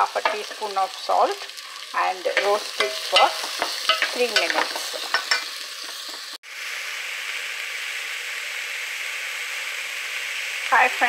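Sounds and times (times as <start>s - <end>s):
onions sizzling in a pot: 0.0s - 11.0s.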